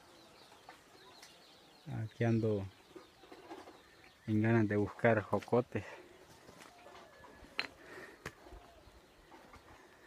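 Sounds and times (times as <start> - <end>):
distant bird calls: 0.0 - 10.0
footsteps on stony ground: 2.8 - 10.0.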